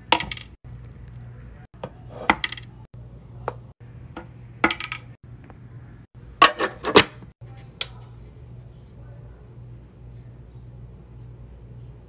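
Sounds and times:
faint low hum: 7.4s - 12.0s.

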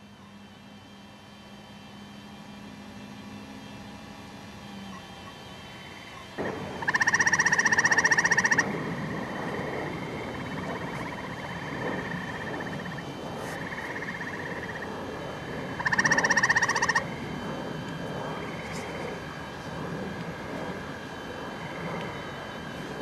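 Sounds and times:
faint frog trilling: 5.9s - 17.4s
frog pulsed trill: 5.9s - 17.6s.

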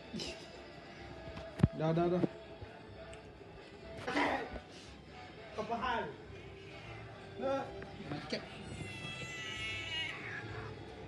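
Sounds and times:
cat meowing: 8.6s - 11.0s.

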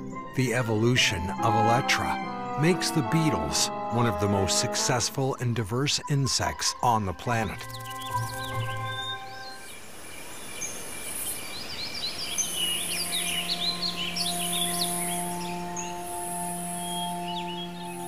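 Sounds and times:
soft sustained music chords: 0.0s - 10.0s, 12.2s - 18.0s
steady background hiss: 5.8s - 18.0s
small birds chirping: 6.8s - 18.0s.

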